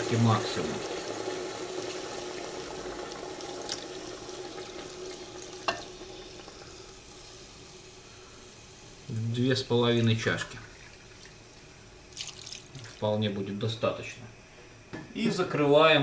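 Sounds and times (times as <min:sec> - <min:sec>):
water pouring into a pot: 0:00.0 - 0:08.0, 0:08.6 - 0:13.2.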